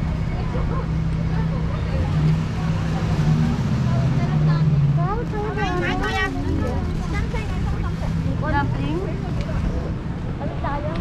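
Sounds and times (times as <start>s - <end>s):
faint chatter of people: 0.0s - 11.0s
vehicle engine humming: 0.0s - 11.0s.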